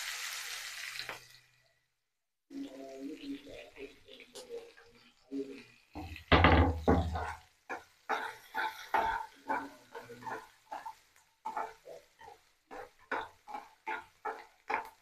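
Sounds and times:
metal spatula scraping a pan: 0:04.3 - 0:15.0.

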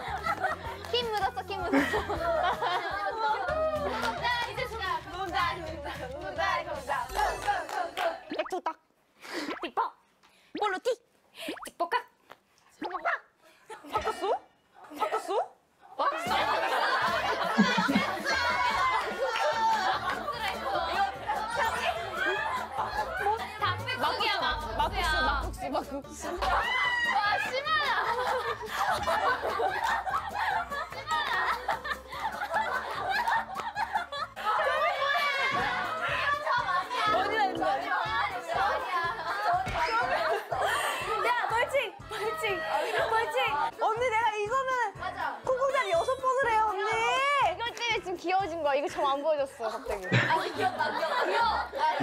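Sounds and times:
women laughing: 0:00.0 - 0:00.9, 0:01.5 - 0:04.5, 0:16.0 - 0:23.7, 0:26.3 - 0:37.5, 0:38.6 - 0:43.3, 0:49.6 - 0:52.0
background music with steady beat: 0:00.0 - 0:08.3, 0:16.1 - 0:52.0
women talking excitedly: 0:00.4 - 0:07.7, 0:15.0 - 0:29.8, 0:34.4 - 0:52.0.

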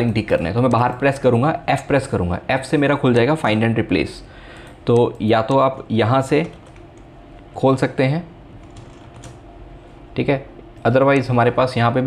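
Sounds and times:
computer keyboard clicks: 0:08.6 - 0:09.4.

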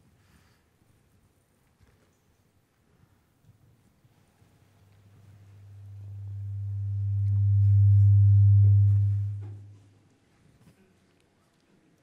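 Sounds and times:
low electronic hum: 0:05.3 - 0:09.9.

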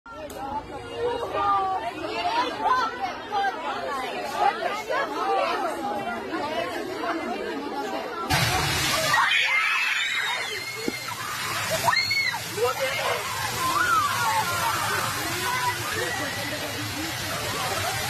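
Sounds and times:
people shouting and screaming: 0:08.3 - 0:18.0.

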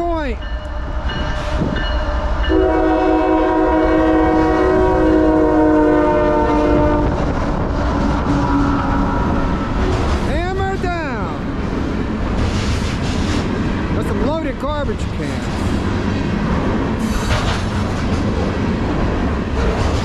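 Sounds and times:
freight train rumbling: 0:00.0 - 0:20.0
locomotive air horn chord: 0:02.5 - 0:07.2.

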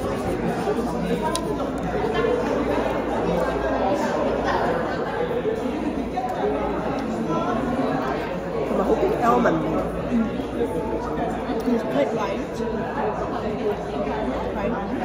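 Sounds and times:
crowd chatter: 0:00.0 - 0:15.0.

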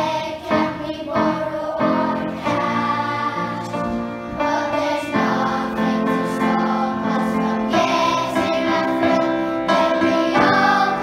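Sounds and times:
children singing in unison: 0:00.0 - 0:11.0.

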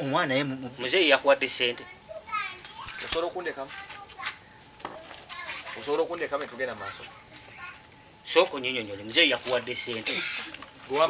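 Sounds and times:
men talking: 0:08.3 - 0:11.0.

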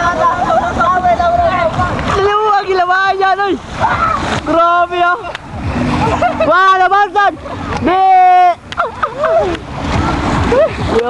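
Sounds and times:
water splashing around legs: 0:00.0 - 0:11.0.

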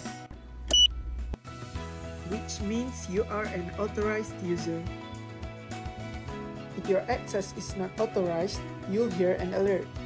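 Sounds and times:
background music: 0:00.0 - 0:10.0
card reader beep: 0:00.7 - 0:00.9.

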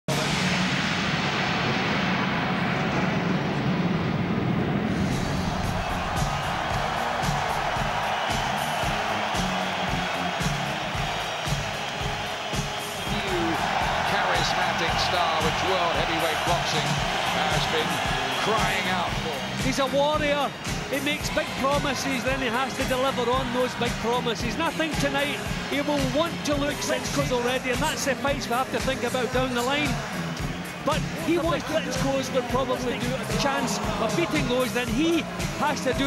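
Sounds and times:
crowd noise: 0:00.1 - 0:36.0
entrance music over sound system: 0:00.1 - 0:36.0.

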